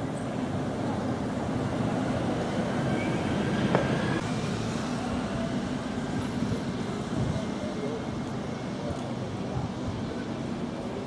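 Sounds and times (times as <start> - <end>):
town square background noise: 0.0 - 11.0.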